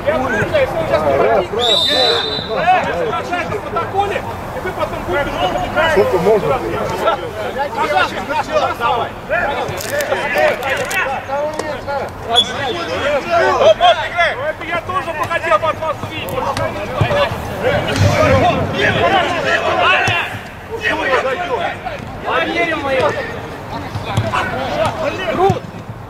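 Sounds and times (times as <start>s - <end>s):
overlapping voices calling out: 0.0s - 25.9s.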